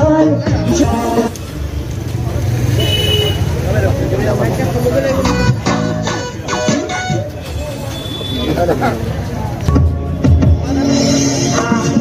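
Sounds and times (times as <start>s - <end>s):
indistinct voices: 0.0s - 2.7s.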